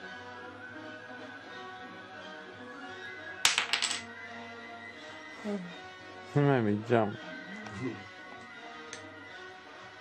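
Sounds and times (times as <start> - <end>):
background music: 0.0 - 10.0
wooden blocks clattering: 3.5 - 4.1.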